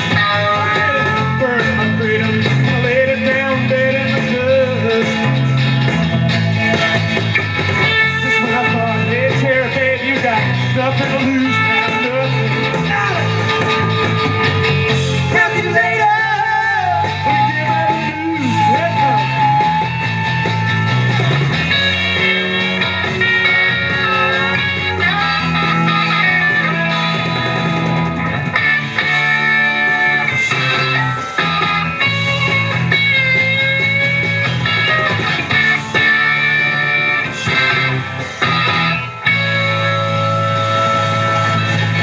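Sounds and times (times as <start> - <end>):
bass guitar: 0.0 - 42.0
drums: 0.0 - 42.0
electric guitar lead lines: 0.0 - 42.0.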